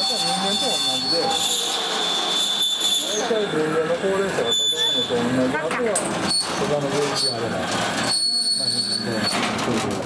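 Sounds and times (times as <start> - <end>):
people chattering: 3.0 - 10.0.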